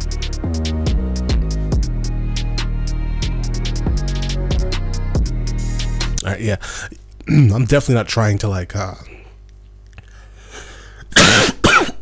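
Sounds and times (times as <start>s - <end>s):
man coughing: 11.1s - 12.0s.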